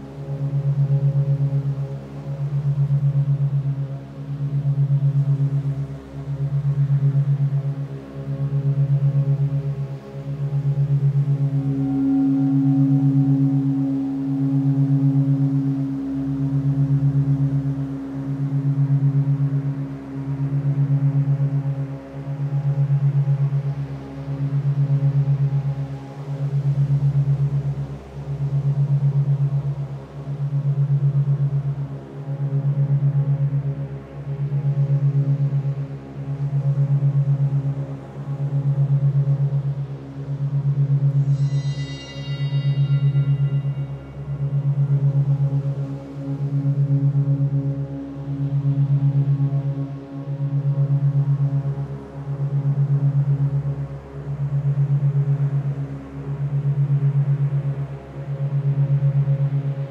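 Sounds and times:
low pulsing hum: 0.0 - 59.9
soft held higher tones: 10.4 - 19.4, 40.7 - 47.9
bright sustained tone: 10.8 - 18.5, 41.0 - 49.8.

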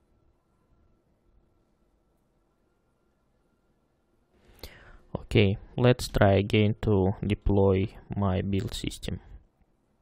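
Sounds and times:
man breathing in with lip noise: 4.4 - 5.1.

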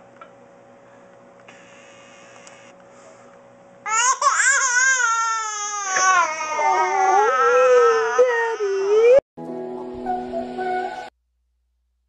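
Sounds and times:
faint steady hum: 0.0 - 7.4
baby crying: 3.9 - 9.2.

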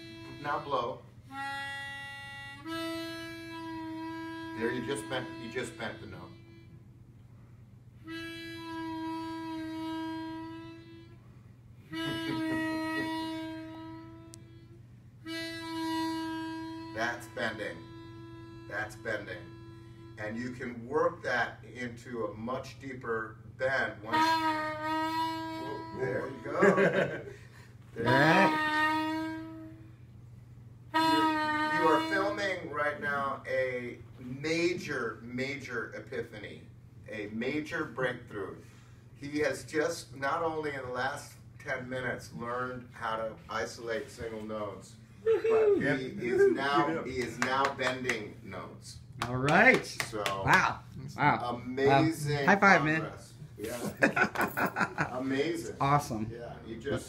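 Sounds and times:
harmonica bent note: 0.0 - 22.8, 23.6 - 30.2, 30.9 - 35.8, 37.2 - 49.8.

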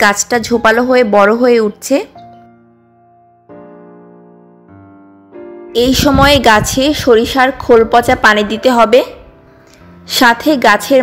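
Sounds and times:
woman narrating: 0.0 - 2.2, 5.8 - 9.2, 10.1 - 11.0.

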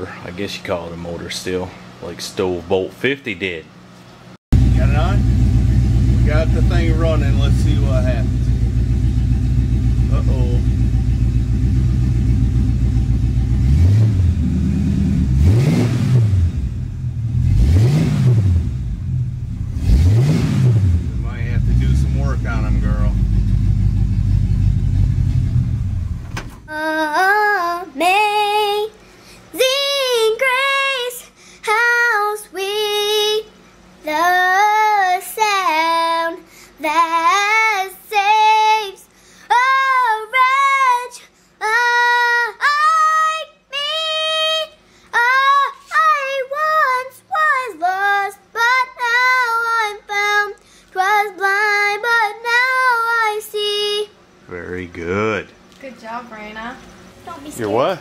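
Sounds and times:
truck engine revving: 4.6 - 26.7
girl singing unaccompanied: 26.7 - 54.2.

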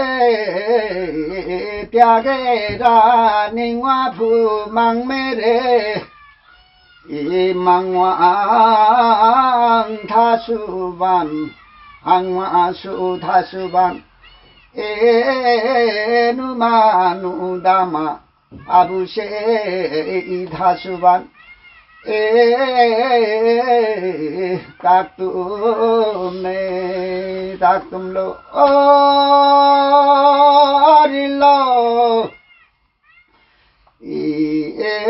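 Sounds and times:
man singing: 0.0 - 6.2, 7.0 - 14.1, 14.7 - 21.4, 22.0 - 32.4, 34.0 - 35.0.

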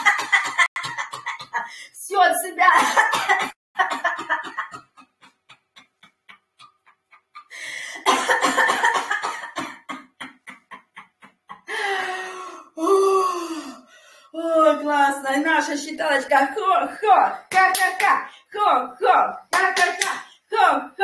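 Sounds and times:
woman coughing forcefully: 0.0 - 1.8, 2.7 - 4.8, 8.0 - 10.3
sharp exhalations: 7.5 - 8.0, 11.7 - 14.3.

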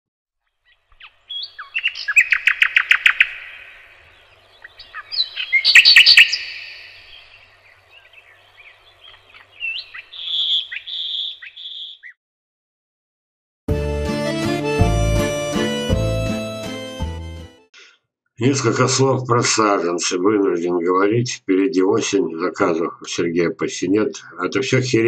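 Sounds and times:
bird chirps: 0.4 - 12.2
high bird calls: 0.4 - 12.2
songbird singing: 0.4 - 12.2.

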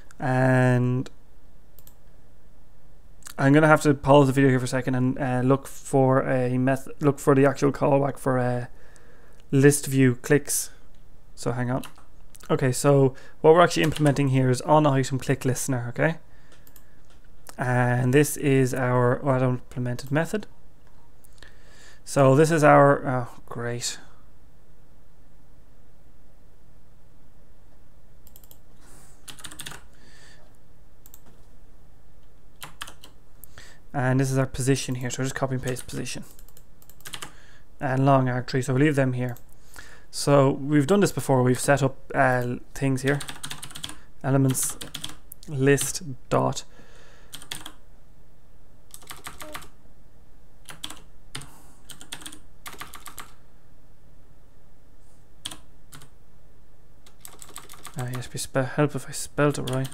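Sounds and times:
computer keyboard clicks: 13.8 - 14.2, 29.3 - 29.9, 32.6 - 33.2, 35.6 - 37.4, 43.1 - 44.0, 44.7 - 45.2, 47.4 - 47.8, 48.9 - 49.7, 50.7 - 53.4, 57.1 - 58.0.

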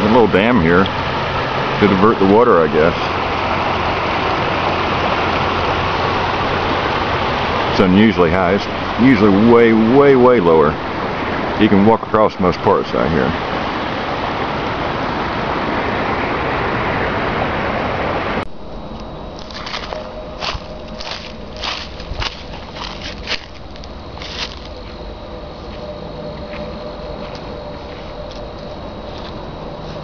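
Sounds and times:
river water rushing over riffles: 0.0 - 18.4
footsteps crunching dry leaves: 19.4 - 30.0.

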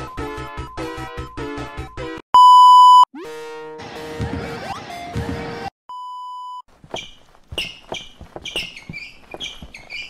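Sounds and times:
high-pitched squeaks: 6.8 - 10.0.

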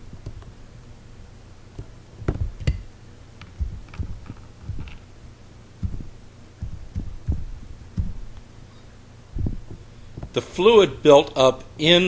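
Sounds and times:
steady low hum: 0.0 - 12.0
keyboard typing thumps: 0.2 - 0.5, 1.8 - 2.8, 3.4 - 5.0, 5.8 - 8.4, 9.4 - 10.4.

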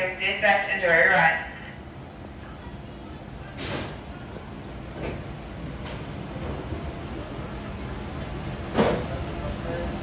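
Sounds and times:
sharp hiss: 3.6 - 4.0.

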